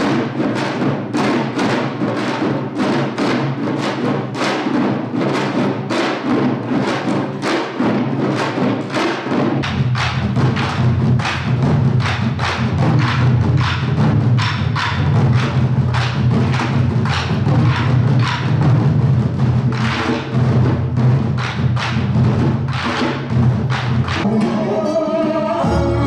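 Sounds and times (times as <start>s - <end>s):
drums struck with sticks: 0.0s - 26.0s.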